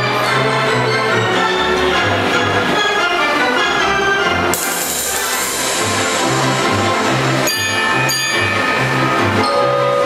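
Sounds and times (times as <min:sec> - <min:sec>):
theatre pipe organ swing tune: 0:00.0 - 0:10.0
bell-like percussion hits: 0:04.5 - 0:09.6.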